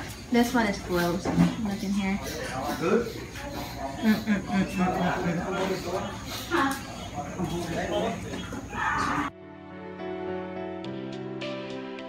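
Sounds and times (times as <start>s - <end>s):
indistinct voices in a room: 0.0s - 9.4s.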